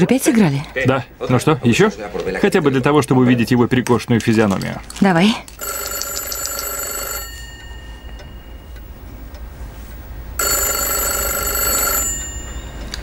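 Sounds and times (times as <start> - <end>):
desk telephone ringing: 5.6 - 9.2, 10.4 - 13.0.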